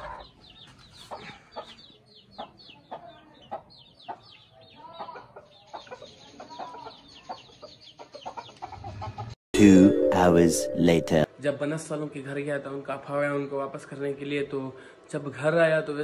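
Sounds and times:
chicks peeping: 0.0 - 9.3.

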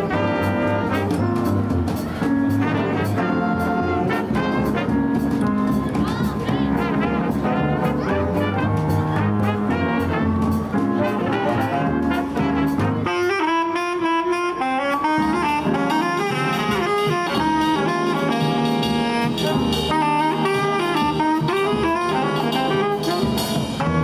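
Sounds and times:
jazz big band playing: 0.0 - 24.0.

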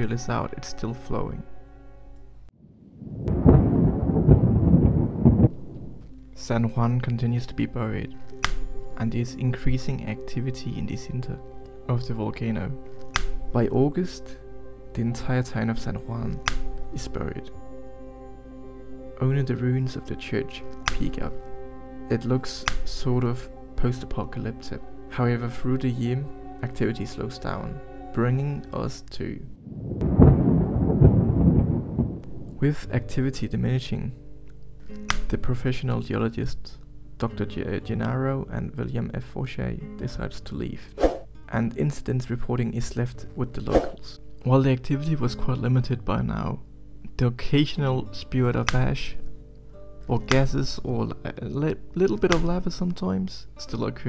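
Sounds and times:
sustained music: 0.0 - 2.5, 3.3 - 30.4, 32.2 - 36.0
deep rumble with sharp crack: 2.9 - 6.1, 29.7 - 32.9.

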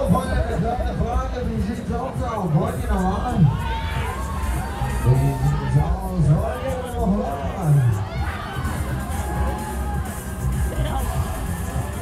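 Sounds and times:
fairground music with heavy bass: 0.0 - 12.0.

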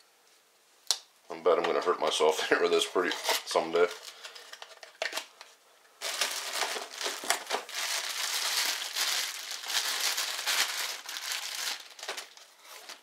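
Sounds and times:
paper and bubble wrap crinkling: 2.5 - 5.3, 6.0 - 13.0.

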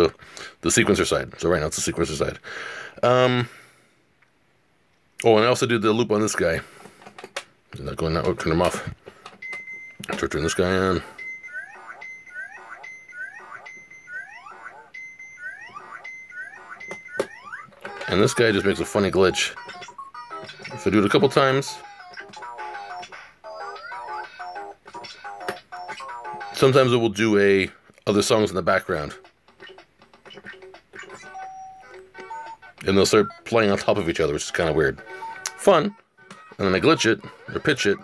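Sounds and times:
electronic toy beeping tune: 9.4 - 26.6, 31.0 - 33.5, 35.0 - 38.0
faint song playing: 9.5 - 27.6, 28.2 - 38.0
looping electronic beep and chirps: 11.1 - 18.1.

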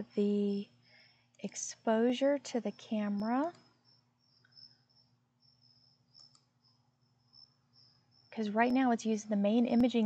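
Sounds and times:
crickets chirping faintly: 0.0 - 10.0
computer mouse clicks: 6.1 - 6.5.

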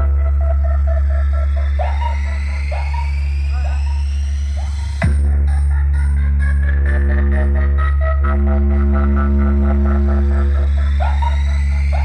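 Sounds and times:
deep bass drone from speakers: 0.0 - 12.0.

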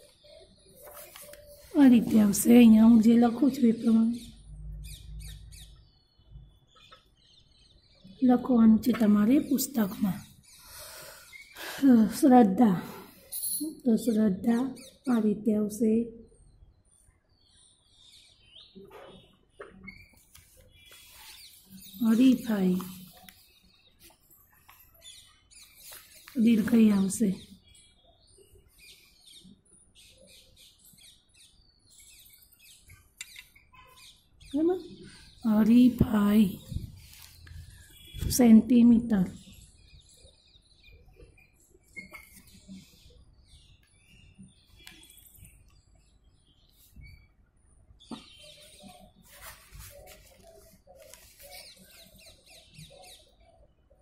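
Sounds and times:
small birds chirping: 0.0 - 54.0
high-pitched chirps and squeaks: 13.2 - 13.9, 18.7 - 23.4, 41.2 - 43.1.

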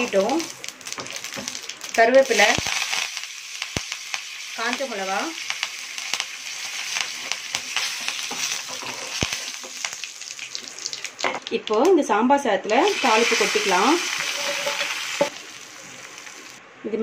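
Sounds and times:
spices sizzling in hot oil: 0.0 - 11.8, 12.6 - 16.6.

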